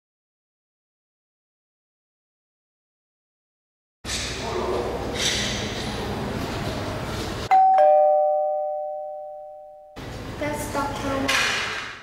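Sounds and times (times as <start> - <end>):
two-note doorbell chime: 7.5 - 10.0.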